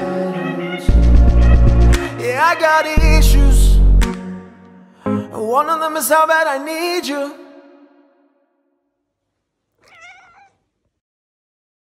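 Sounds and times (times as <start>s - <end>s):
person singing: 0.0s - 4.3s, 4.9s - 8.1s
cat meowing: 9.8s - 10.6s.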